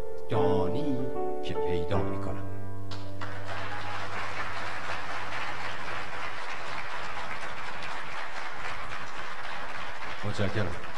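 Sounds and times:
audience applauding: 3.2 - 10.9.

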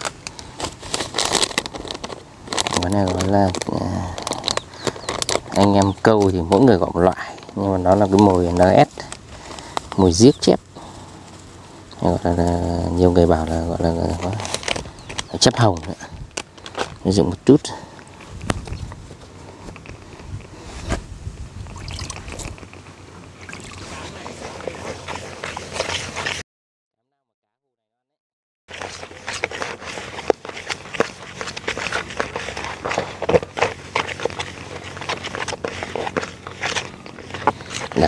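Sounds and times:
hands squishing damp bait: 0.0 - 12.7, 13.5 - 19.0, 28.7 - 38.0
scraping against plastic basin: 28.7 - 38.0.

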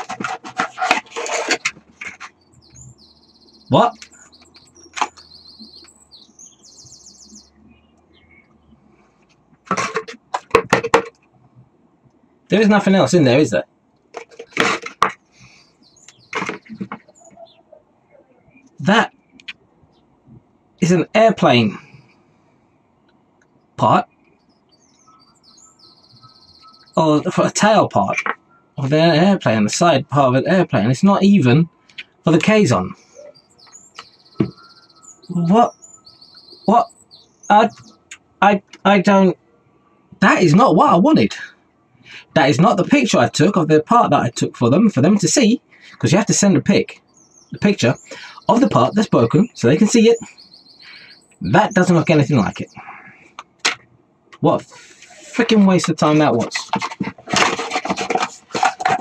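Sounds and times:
small birds chirping: 0.0 - 59.0
cardboard box rustling: 56.7 - 59.0.

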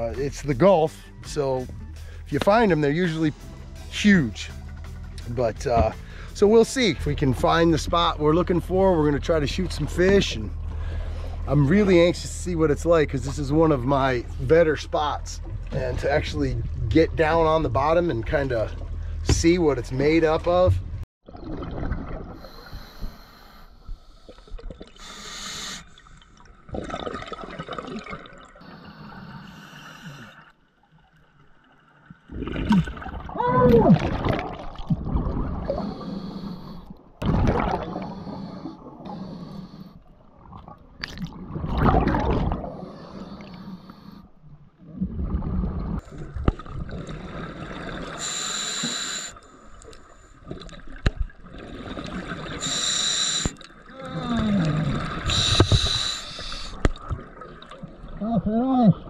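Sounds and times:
gurgling exhaled bubbles: 20.5 - 23.1, 24.2 - 30.5, 32.3 - 39.3, 40.2 - 43.2, 44.8 - 48.3, 50.4 - 59.0
regulator hissing inhalations: 22.5 - 25.9, 48.2 - 49.4, 52.6 - 53.6, 55.3 - 56.8.

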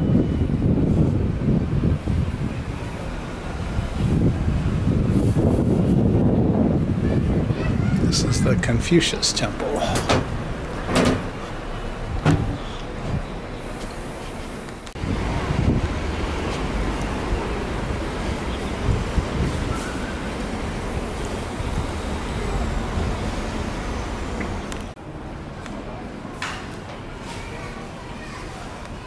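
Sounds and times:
low traffic rumble: 0.0 - 29.0
sharp knocks: 10.9 - 11.4.

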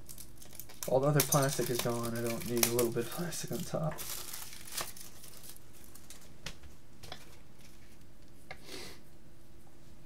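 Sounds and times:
plastic wrap crinkling: 0.0 - 8.0.

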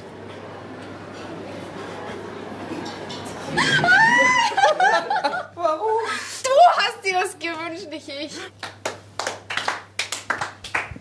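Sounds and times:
people clapping: 8.6 - 11.0.

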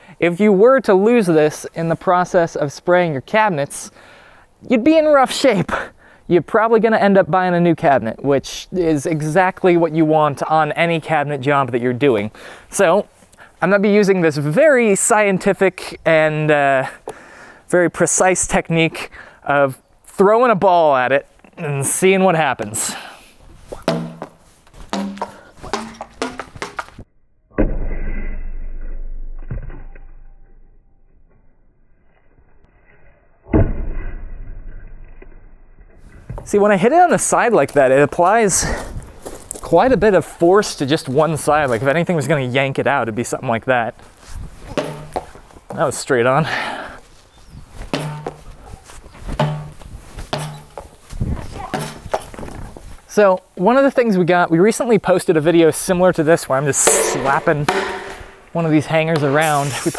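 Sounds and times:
rubber ball thudding: 23.8 - 27.0, 44.8 - 45.4, 47.9 - 48.6, 49.4 - 50.9, 51.7 - 52.3, 56.8 - 58.6
ball striking cabinet door: 23.9 - 24.3, 24.9 - 26.8, 44.8 - 45.3, 48.0 - 48.4, 49.4 - 49.8, 51.8 - 52.1.

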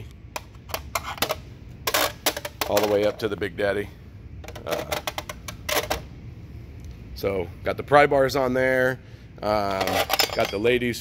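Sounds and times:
pry bars clinking on metal rack: 9.8 - 10.7.

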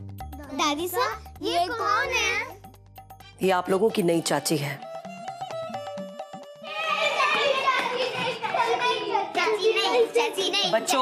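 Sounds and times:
children chattering excitedly: 6.6 - 11.0.

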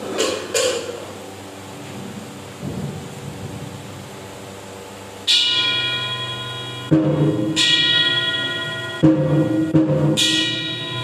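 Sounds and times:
struck percussion knocks: 2.6 - 4.2, 6.6 - 11.0
bell ringing: 5.3 - 11.0.

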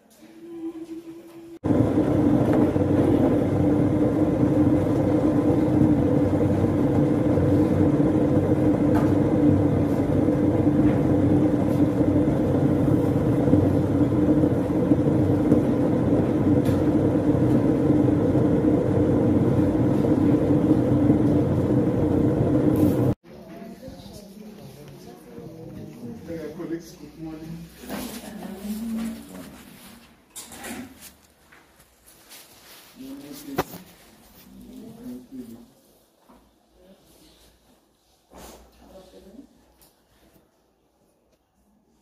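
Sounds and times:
machine hum: 1.2 - 23.2.

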